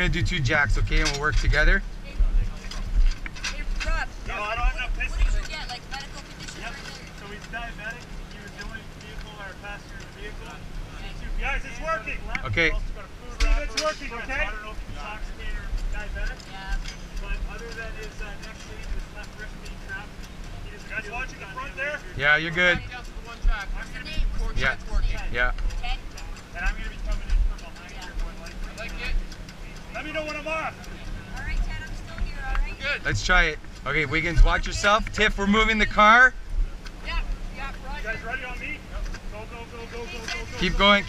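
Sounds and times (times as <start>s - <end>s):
engine humming: 0.0s - 41.0s
muffled voices: 0.0s - 41.0s.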